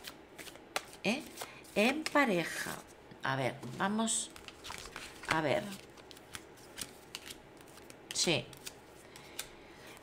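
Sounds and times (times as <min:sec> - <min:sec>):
soft card rustling: 0:03.8 - 0:10.0.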